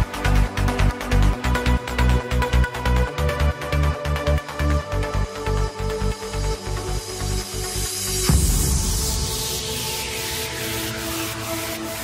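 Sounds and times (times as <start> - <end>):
white-noise sweep: 7.6 - 12.0.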